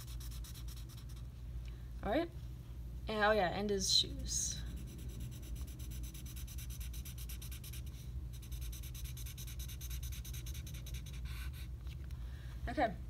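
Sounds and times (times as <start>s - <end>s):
marker scribbling on paper: 0.0s - 1.3s, 4.8s - 11.7s.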